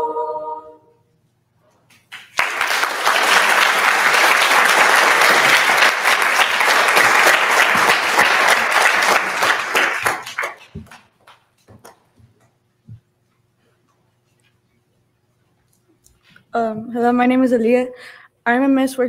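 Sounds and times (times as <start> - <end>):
audience applauding: 2.0 - 12.1.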